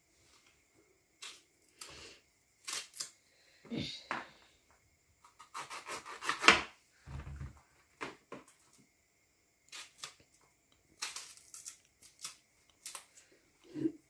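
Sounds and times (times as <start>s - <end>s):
knife scraping plantain skin: 5.2s - 6.7s, 9.7s - 10.2s
dull thump: 7.1s - 7.6s.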